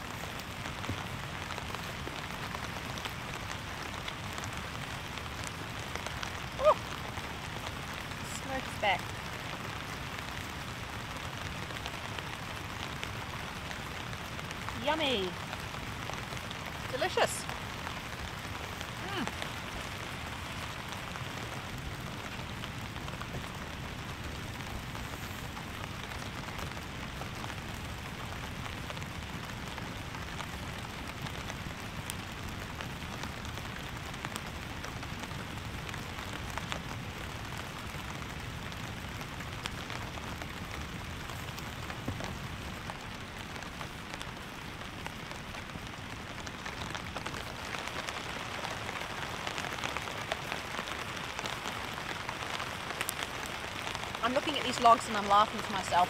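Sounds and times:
heavy rain on a tarp: 0:00.0 - 0:56.0.

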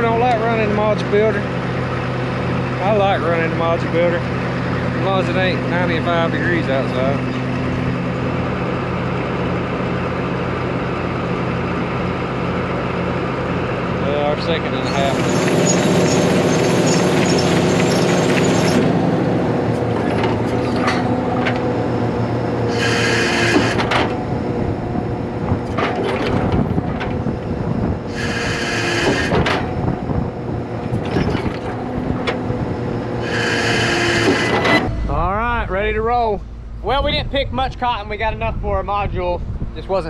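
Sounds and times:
engine and hydraulic drone: 0:00.0 - 0:40.0
hissing bursts: 0:22.7 - 0:23.7, 0:28.1 - 0:29.3, 0:33.2 - 0:34.5.

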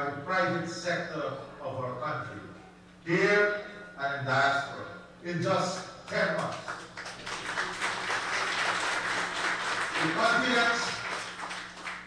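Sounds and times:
audience applauding: 0:06.4 - 0:12.0.

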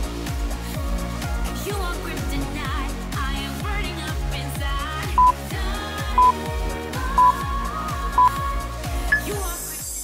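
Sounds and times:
background music with kick drum: 0:00.0 - 0:10.0
short electronic beeps: 0:06.2 - 0:06.4, 0:07.1 - 0:07.4, 0:08.2 - 0:08.4, 0:09.1 - 0:09.4.

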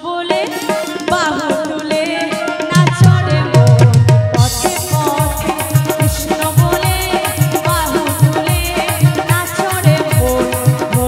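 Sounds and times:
hand drum fast rhythm: 0:00.3 - 0:11.0.

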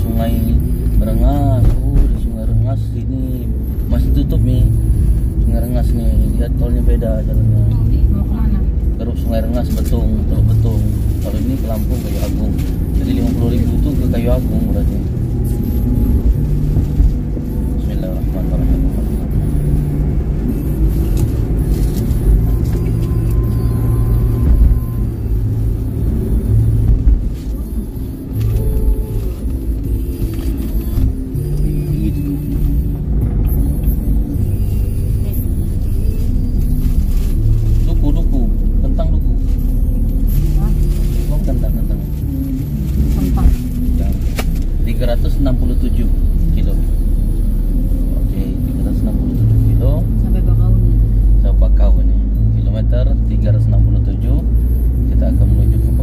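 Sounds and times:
car road rumble: 0:00.0 - 0:56.0
music playing: 0:00.0 - 0:56.0.

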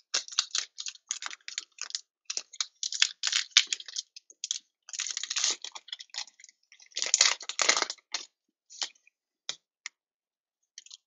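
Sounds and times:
card pack wrapper crinkling: 0:00.0 - 0:08.9.

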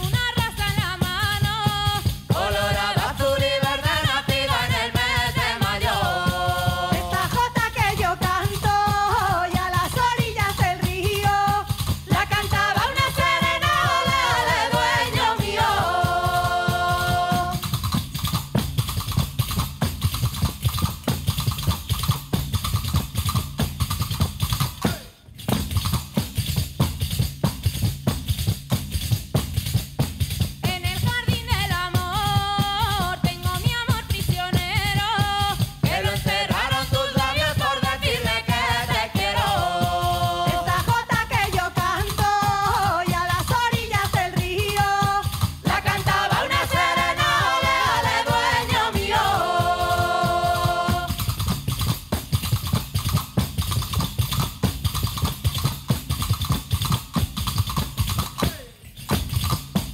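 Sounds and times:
women singing in harmony: 0:00.0 - 0:17.7, 0:30.7 - 0:51.2
frame drums with jingles: 0:00.0 - 0:59.9.

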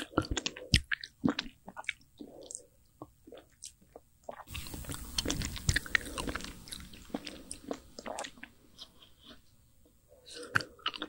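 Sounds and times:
biting and chewing ice cream bar: 0:00.0 - 0:09.4, 0:10.2 - 0:11.0
mouth sounds: 0:04.4 - 0:09.4.

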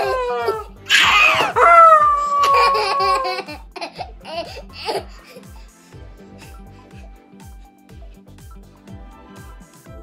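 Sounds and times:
toddler squealing with laughter: 0:00.0 - 0:05.0.

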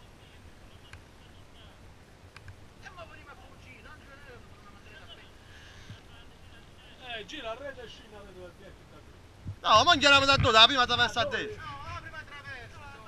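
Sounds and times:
distant men talking: 0:02.8 - 0:13.0.

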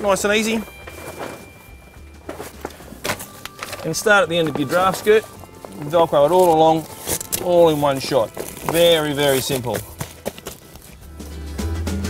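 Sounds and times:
plastic sheet rustling: 0:00.1 - 0:10.9.

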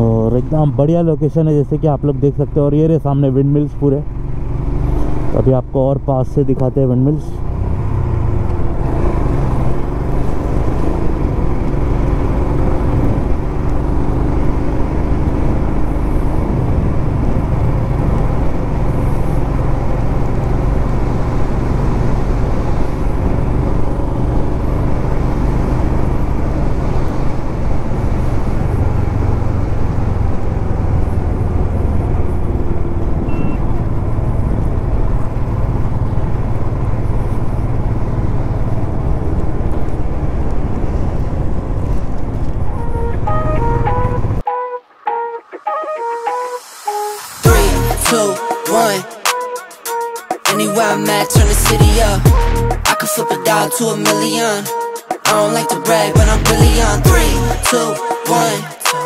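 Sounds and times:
wind and road noise: 0:00.0 - 0:45.2
motorcycle engine cruising: 0:02.0 - 0:06.0, 0:07.2 - 0:44.4.

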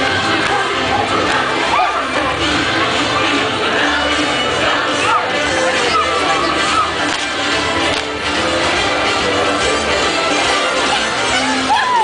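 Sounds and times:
crowd voices: 0:00.0 - 0:12.0
parade music: 0:00.0 - 0:12.0
person shouting: 0:11.4 - 0:12.0.

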